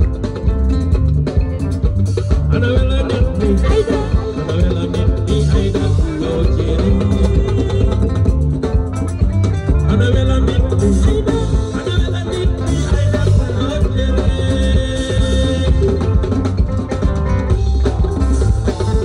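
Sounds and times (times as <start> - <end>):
bass guitar: 0.0 - 19.0
drum kit: 0.0 - 19.0
guitar: 0.0 - 19.0
keyboard: 0.0 - 19.0.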